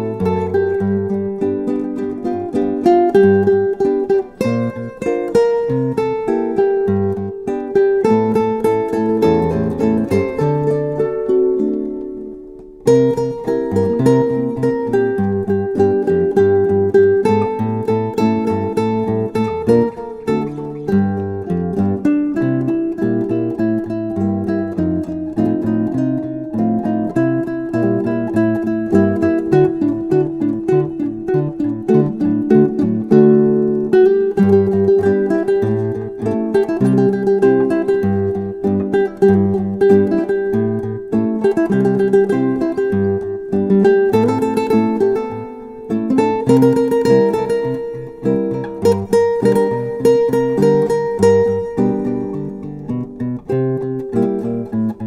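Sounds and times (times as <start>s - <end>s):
acoustic guitar music: 0.0s - 55.0s.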